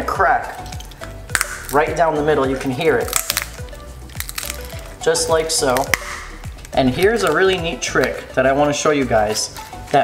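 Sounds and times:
background music: 0:00.0 - 0:10.0
lobster shell cracking: 0:00.5 - 0:02.0, 0:02.6 - 0:08.3.

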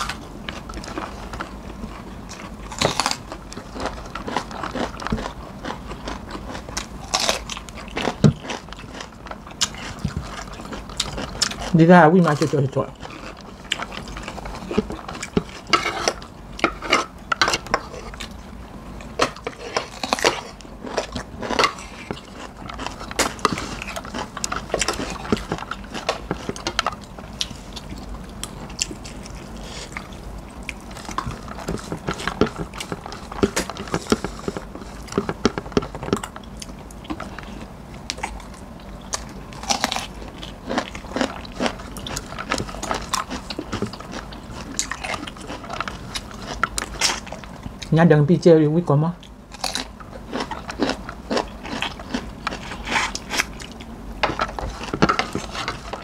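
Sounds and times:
chewing and mouth sounds: 0:00.0 - 0:47.9, 0:49.2 - 0:56.0.

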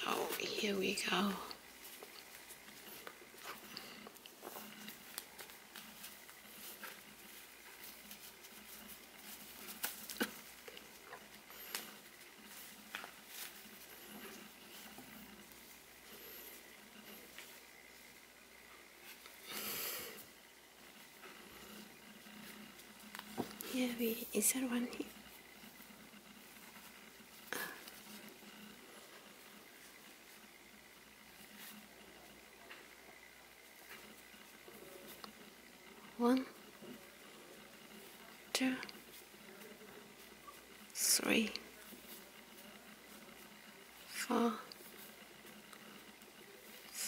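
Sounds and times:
faint rustling of yarn: 0:00.0 - 0:47.0.

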